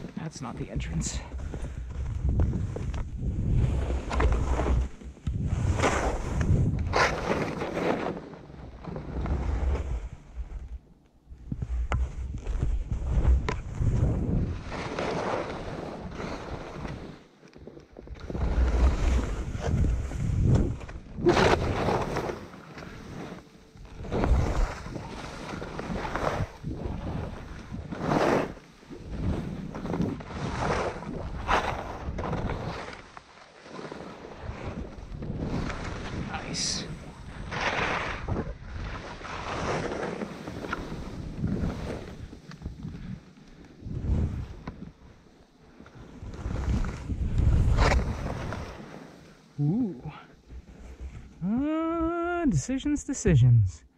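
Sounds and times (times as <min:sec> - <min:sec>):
skis scraping over snow: 0:00.0 - 0:10.6, 0:11.6 - 0:49.5.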